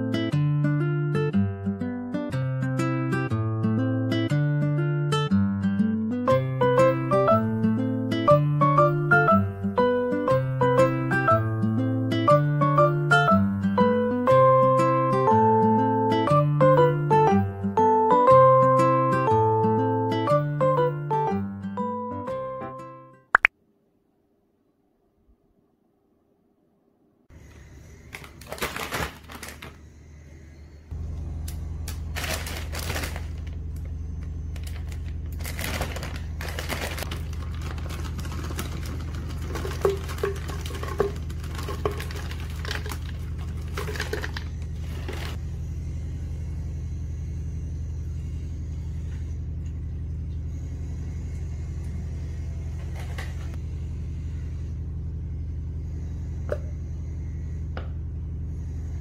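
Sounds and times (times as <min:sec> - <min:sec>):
packaging rustling: 0:28.1 - 0:29.8, 0:31.9 - 0:33.7, 0:34.6 - 0:45.4
steady low hum: 0:29.4 - 0:59.0.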